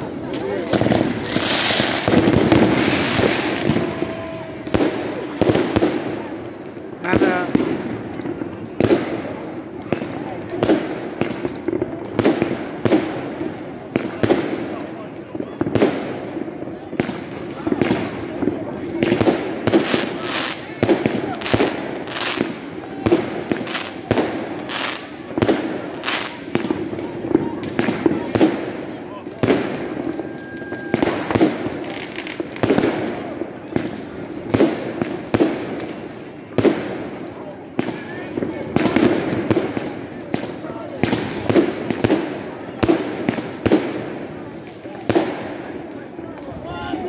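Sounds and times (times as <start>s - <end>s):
fireworks bangs: 0.0s - 47.0s.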